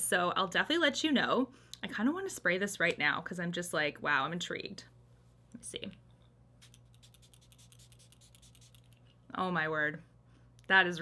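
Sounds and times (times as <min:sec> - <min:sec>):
low steady hum: 0:00.0 - 0:11.0
face mist spray hissing: 0:06.6 - 0:08.9.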